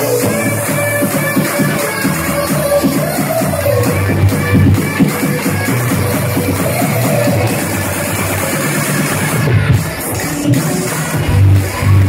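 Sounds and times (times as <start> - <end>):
electronic dance music with heavy bass: 0.0 - 12.0.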